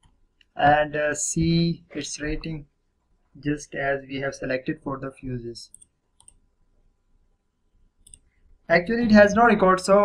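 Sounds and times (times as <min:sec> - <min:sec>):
computer mouse click: 0:05.7 - 0:06.4, 0:08.0 - 0:08.3.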